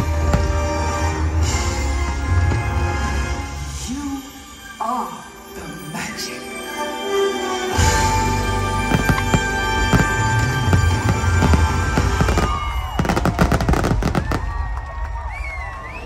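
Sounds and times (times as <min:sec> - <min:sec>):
loud show music: 0:00.0 - 0:14.2
fireworks crackling bursts: 0:08.2 - 0:15.4
fireworks bangs and booms: 0:08.8 - 0:15.3.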